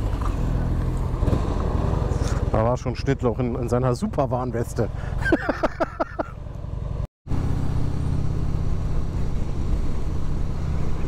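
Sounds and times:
motorcycle engine running: 0:06.2 - 0:11.0.

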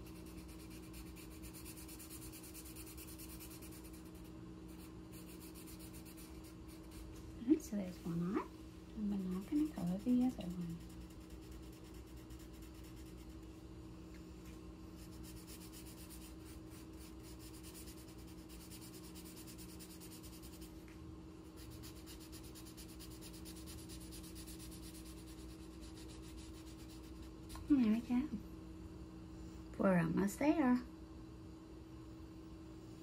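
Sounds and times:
marker scratching on paper: 0:00.0 - 0:07.1, 0:09.1 - 0:13.4, 0:15.0 - 0:20.7, 0:21.6 - 0:27.6
low steady hum: 0:00.0 - 0:33.0.

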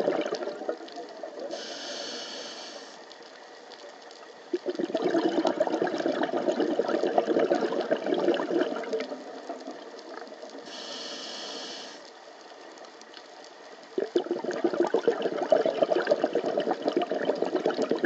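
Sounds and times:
exhaled bubbles gurgling underwater: 0:00.0 - 0:02.9, 0:04.5 - 0:12.0, 0:13.8 - 0:18.0
hissing inhale through regulator: 0:01.4 - 0:03.2, 0:10.5 - 0:12.1.

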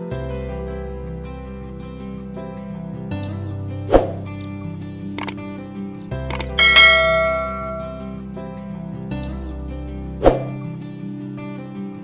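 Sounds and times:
background music: 0:00.0 - 0:12.0
quick clicks: 0:06.3 - 0:06.6
bright bell chime: 0:06.3 - 0:08.1.

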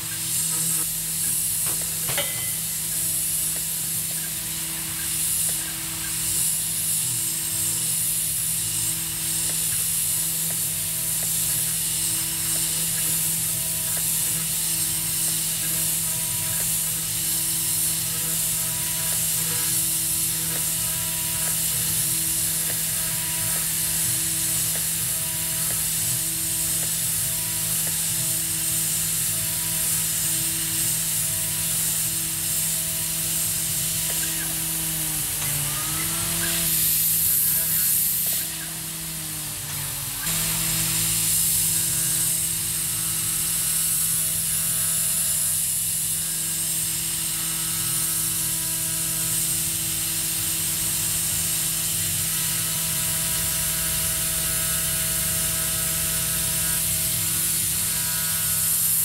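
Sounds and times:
coolant nozzle hiss: 0:00.0 - 0:59.0
mill spindle whining: 0:00.0 - 0:59.0.

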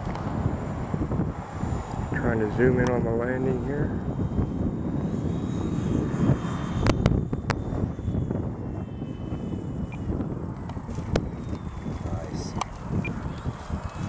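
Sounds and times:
faint whine falling in pitch: 0:00.0 - 0:14.0
model plane electric motors: 0:00.0 - 0:14.0.

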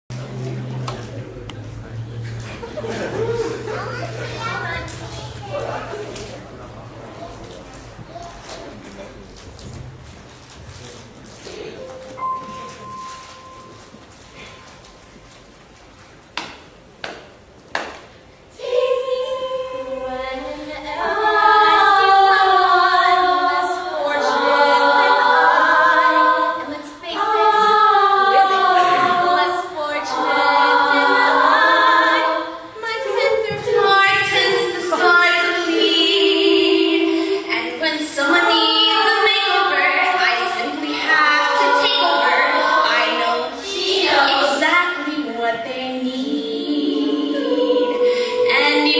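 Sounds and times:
girls choir singing a cappella: 0:00.1 - 0:07.2, 0:18.4 - 0:48.9
girl speaking: 0:03.8 - 0:06.1.

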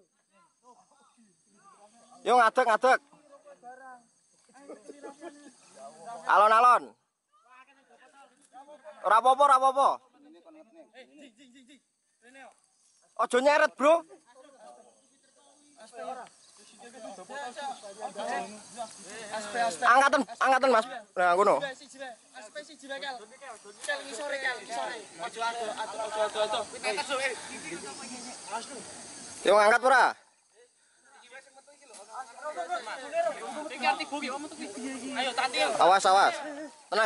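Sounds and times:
faint hiss: 0:00.0 - 0:37.0
men talking over one another: 0:00.0 - 0:37.0.

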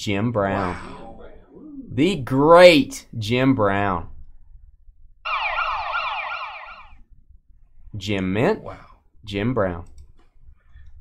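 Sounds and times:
electronic siren sweeps: 0:05.3 - 0:07.0.

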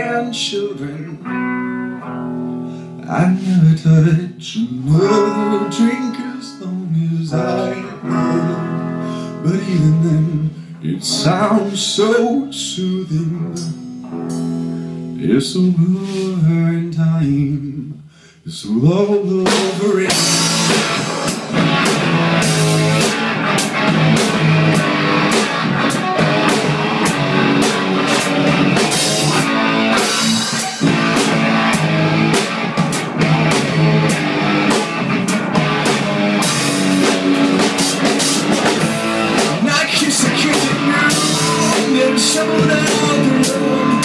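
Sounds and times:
electric guitars: 0:00.0 - 0:16.5, 0:19.4 - 0:44.0
drum kit beating: 0:05.0 - 0:09.0, 0:13.5 - 0:14.7, 0:19.4 - 0:44.0.

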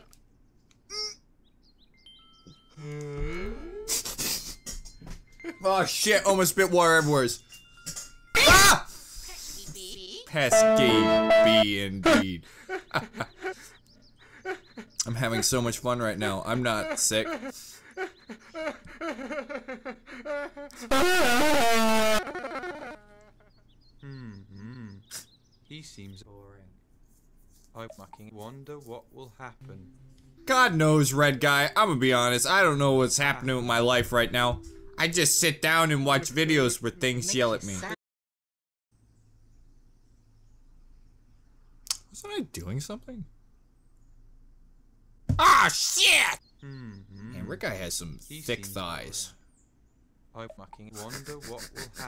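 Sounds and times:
faint chirps: 0:23.2 - 0:26.7, 0:46.4 - 0:51.2
puppet voice: 0:45.4 - 0:47.6, 0:50.8 - 0:52.0.

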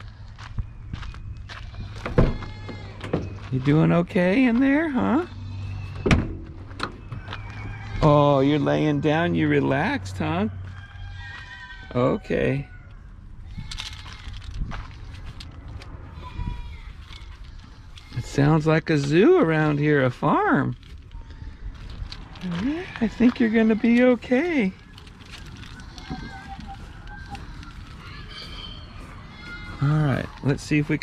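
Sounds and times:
distant farm animals calling: 0:00.0 - 0:03.8, 0:04.4 - 0:14.3, 0:21.2 - 0:31.0
man talking: 0:03.5 - 0:05.3, 0:08.0 - 0:10.5, 0:29.8 - 0:31.0.

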